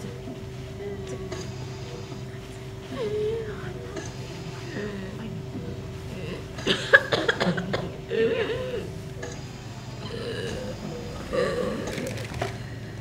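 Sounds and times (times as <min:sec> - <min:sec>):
elderly woman's strained vocal sounds: 0:10.0 - 0:12.2.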